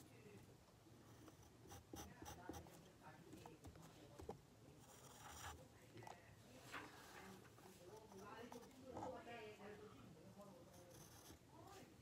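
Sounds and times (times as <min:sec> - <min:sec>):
pencil scratching on paper: 0:01.0 - 0:04.2, 0:04.8 - 0:05.6, 0:06.9 - 0:09.4, 0:10.6 - 0:11.8.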